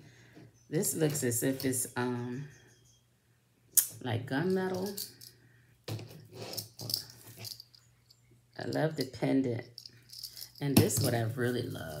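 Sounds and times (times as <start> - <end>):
necklace chips rattling: 4.4 - 5.4, 6.0 - 9.1, 9.7 - 12.0.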